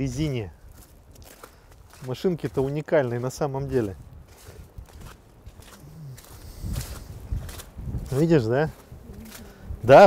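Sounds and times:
footsteps on slushy asphalt: 0.0 - 10.0.

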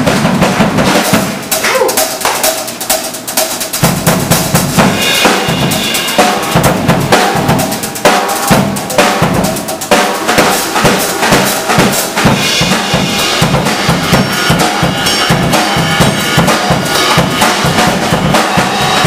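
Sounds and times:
bass drum: 0.0 - 19.0
snare drum and rimshots: 0.0 - 19.0
live blues band playing: 9.9 - 19.0.

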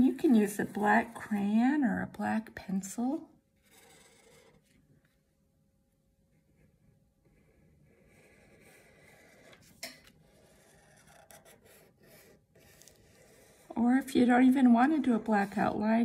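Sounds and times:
marker drawing on paper: 0.0 - 1.6, 3.6 - 4.8, 6.5 - 9.6, 10.2 - 16.0.

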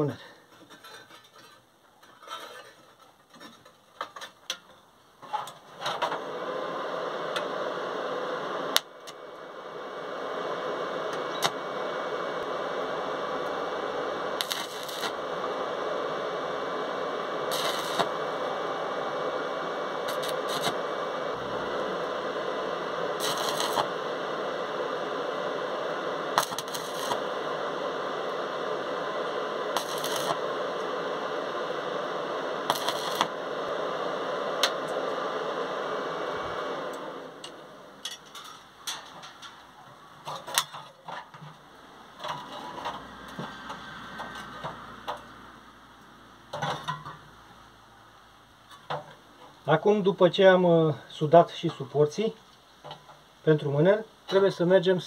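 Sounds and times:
steady hiss: 0.0 - 55.0
welding arc crackling: 5.6 - 41.0.

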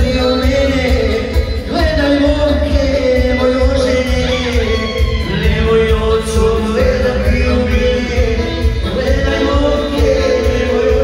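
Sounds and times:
amplified band music: 0.0 - 11.0.

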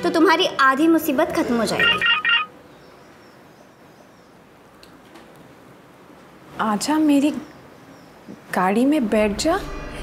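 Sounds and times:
phone message alert beeps: 1.8 - 2.5.

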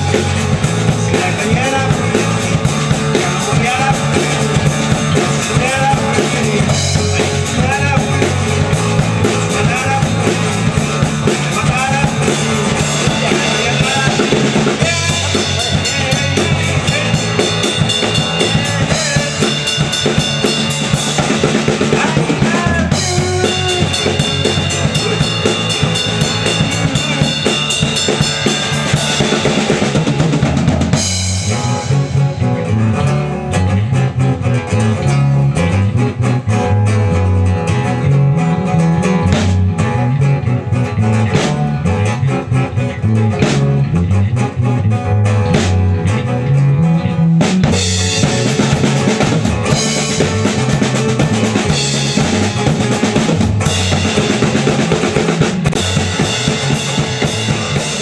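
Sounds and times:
acoustic guitar: 0.0 - 58.0
drum kit: 0.0 - 58.0
electric bass line: 0.0 - 58.0.

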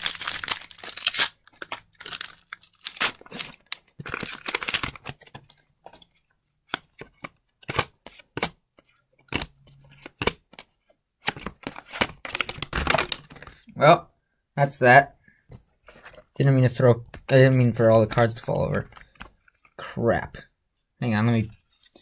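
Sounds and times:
foil wrapper tearing and crinkling: 0.0 - 5.2.

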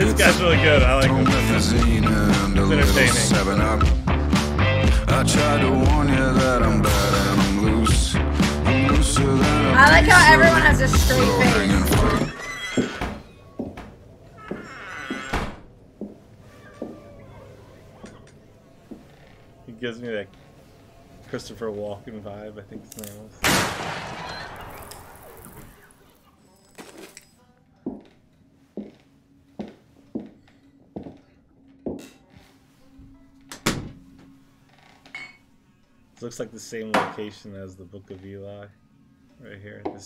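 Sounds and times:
faint music: 0.0 - 3.9, 4.8 - 40.0.

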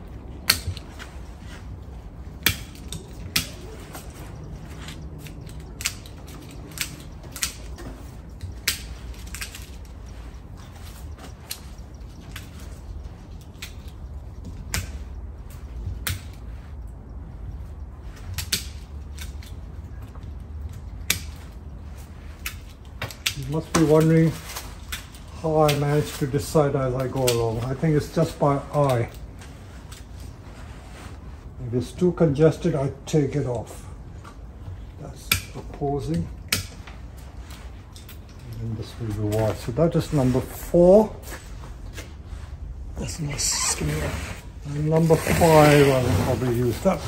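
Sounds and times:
low steady hum: 0.0 - 47.0
scissors snipping branches: 0.2 - 1.1, 2.3 - 17.1, 17.9 - 27.8, 35.3 - 36.9.

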